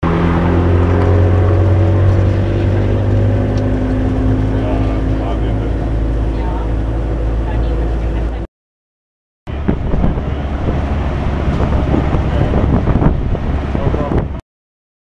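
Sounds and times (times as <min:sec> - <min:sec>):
bus engine humming: 0:00.0 - 0:08.5, 0:09.5 - 0:14.4
road and wind noise: 0:00.0 - 0:08.5, 0:09.5 - 0:14.4.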